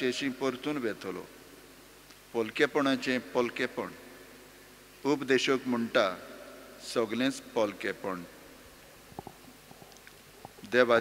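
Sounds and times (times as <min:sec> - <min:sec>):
man reading into microphone: 0:00.0 - 0:01.4, 0:02.3 - 0:04.2, 0:05.0 - 0:08.4, 0:10.6 - 0:11.0.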